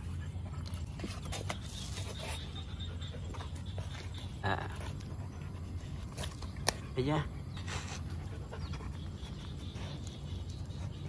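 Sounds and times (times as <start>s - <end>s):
dog panting and sniffing: 0.0s - 11.0s.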